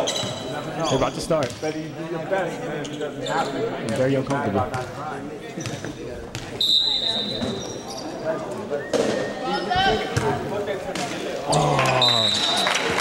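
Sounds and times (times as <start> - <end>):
referee whistle: 6.6 - 7.7, 11.9 - 12.6.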